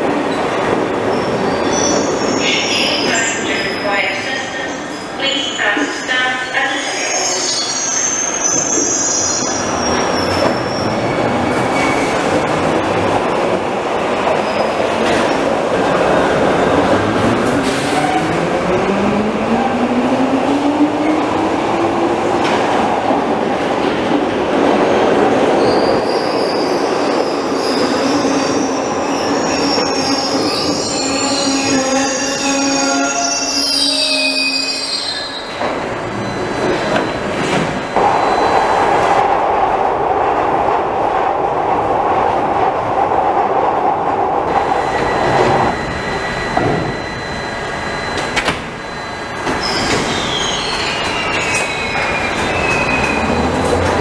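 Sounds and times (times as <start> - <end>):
high wheel squeal: 7.0 - 12.3, 25.6 - 38.7, 48.8 - 53.9
rumble of train wheels: 35.5 - 54.0.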